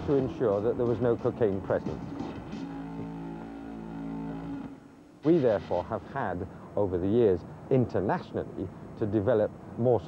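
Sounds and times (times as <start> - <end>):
low horn-like tone: 2.6 - 5.0.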